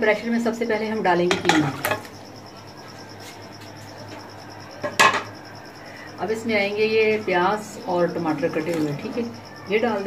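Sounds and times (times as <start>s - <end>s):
cricket chirping: 0.0s - 10.0s
low steady hum: 0.0s - 10.0s.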